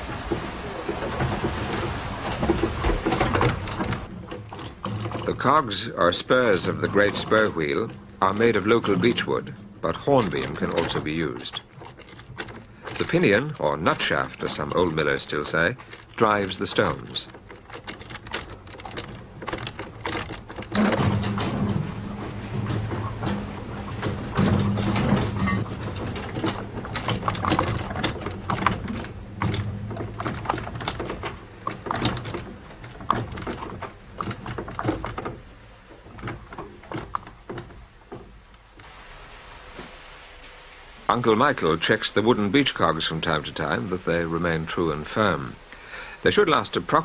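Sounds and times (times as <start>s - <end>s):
mill gear cogs clattering: 0.0s - 38.9s, 41.1s - 47.0s
low hum: 17.2s - 34.9s.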